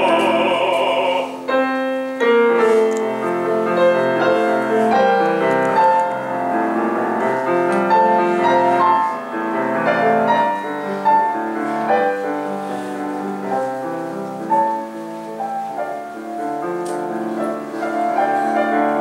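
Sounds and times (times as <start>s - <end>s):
grand piano playing: 0.0s - 19.0s.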